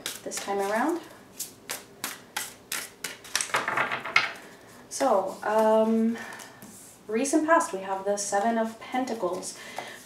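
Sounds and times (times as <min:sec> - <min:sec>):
cards snapping and tapping: 0:01.7 - 0:03.8.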